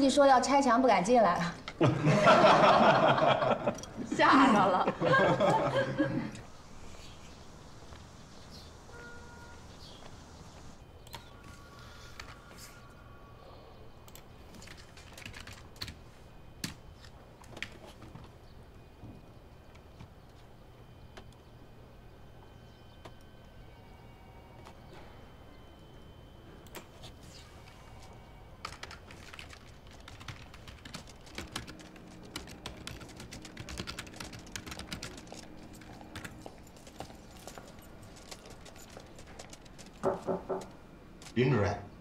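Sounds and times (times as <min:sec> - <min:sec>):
computer keyboard typing: 0:14.0 - 0:16.0, 0:28.6 - 0:41.4.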